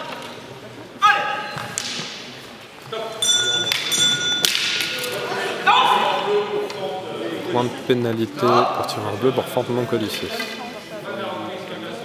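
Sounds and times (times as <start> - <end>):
short shouts and voices: 1.0 - 1.6, 4.9 - 9.2.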